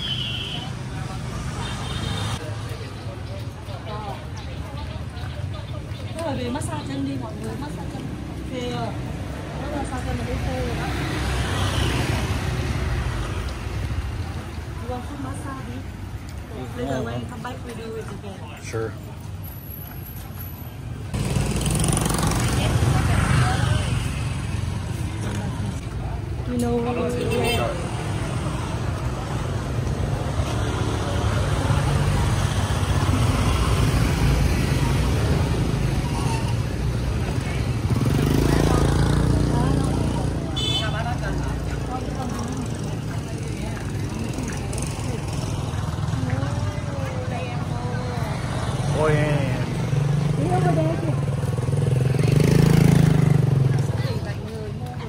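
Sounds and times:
motorbike engines passing: 0:00.0 - 0:55.0
people's voices: 0:00.0 - 0:55.0.

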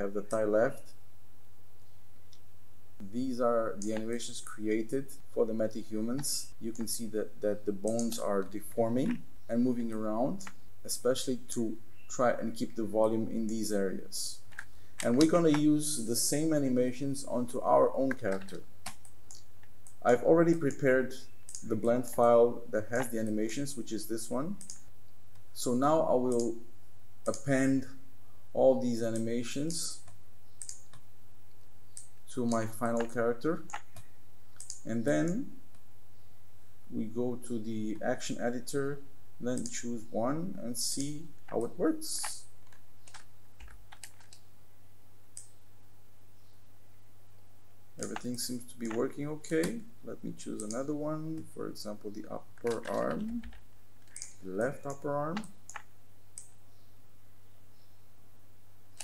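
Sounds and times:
low electrical hum: 0:00.0 - 0:59.0
computer mouse click: 0:07.8 - 0:08.2, 0:21.4 - 0:21.7, 0:24.6 - 0:24.9, 0:26.3 - 0:26.5, 0:30.0 - 0:31.0, 0:31.9 - 0:33.1, 0:33.7 - 0:35.8, 0:39.6 - 0:39.8, 0:50.6 - 0:50.8, 0:52.6 - 0:56.6
faint computer mouse clicks: 0:30.0 - 0:31.0, 0:33.7 - 0:34.8, 0:52.7 - 0:54.4.

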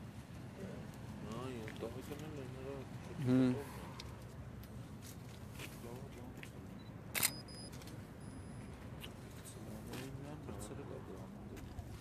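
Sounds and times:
low outdoor background: 0:00.0 - 0:12.0
camera shutter click: 0:07.1 - 0:07.9.

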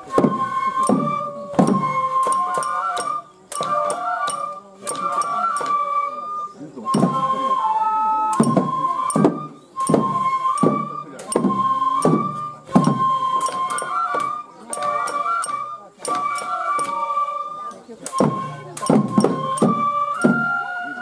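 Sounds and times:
drum strokes: 0:00.0 - 0:06.2, 0:06.8 - 0:21.0
flute high notes: 0:00.0 - 0:21.0
voices singing or calling: 0:00.0 - 0:21.0.

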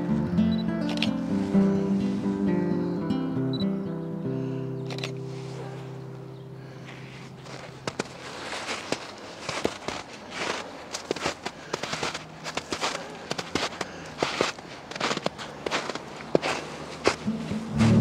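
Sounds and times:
footsteps crunching through snow: 0:05.2 - 0:18.0.

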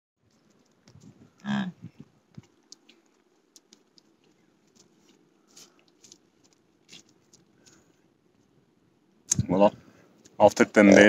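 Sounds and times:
wet licking sounds: 0:01.9 - 0:07.9.

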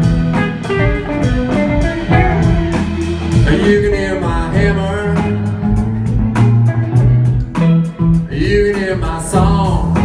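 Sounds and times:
live country band playing: 0:00.0 - 0:10.0
man singing: 0:03.3 - 0:05.9, 0:08.1 - 0:10.0.

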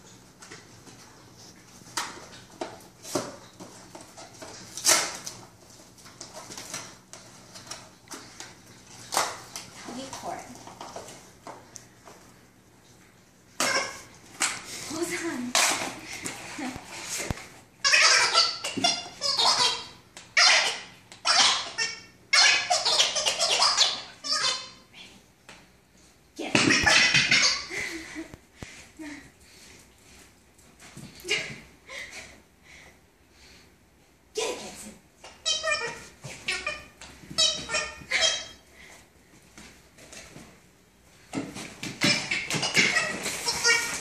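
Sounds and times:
toy ball squealing giggle: 0:17.8 - 0:24.7, 0:26.6 - 0:27.7, 0:42.0 - 0:44.0.

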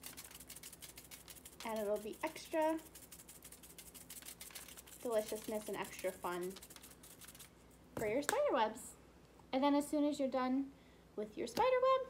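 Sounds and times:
sprinkles rattling in shaker bottle: 0:00.0 - 0:07.5.

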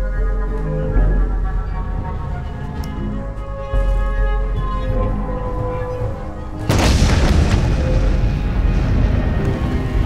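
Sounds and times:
low droning music: 0:00.0 - 0:10.0
deep boom: 0:06.7 - 0:10.0.

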